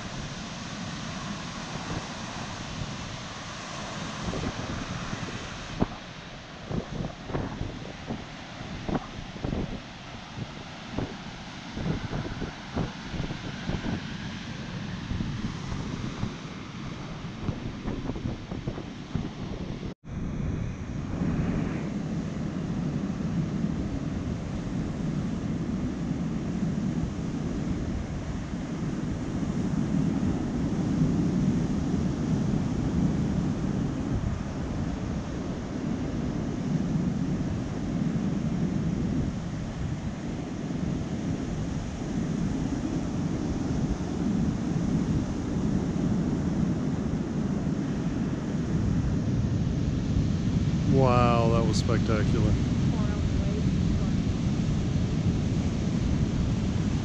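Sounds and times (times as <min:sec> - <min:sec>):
surf breaking on shore: 0:00.0 - 0:19.9, 0:20.5 - 0:57.0
wind buffeting microphone: 0:00.0 - 0:57.0.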